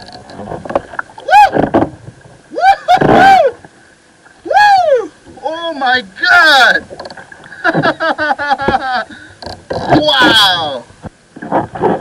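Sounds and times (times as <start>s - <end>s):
man whooping: 1.2s - 1.6s, 2.5s - 3.6s, 4.4s - 5.2s.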